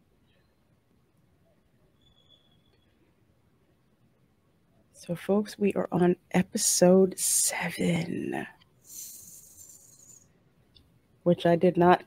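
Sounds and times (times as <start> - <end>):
faint high hiss: 6.5 - 11.3.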